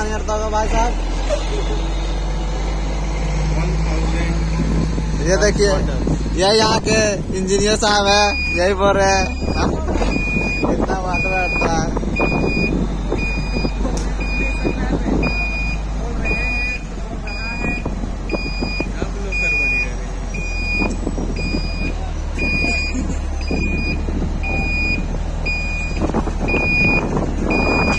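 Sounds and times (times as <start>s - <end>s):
truck engine running low: 0.0s - 27.9s
reversing alarm beeps: 8.3s - 27.9s.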